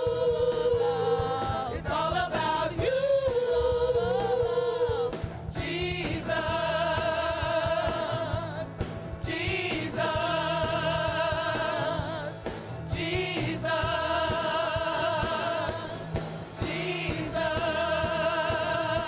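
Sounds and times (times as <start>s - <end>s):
gospel choir singing in harmony: 0.0s - 19.0s.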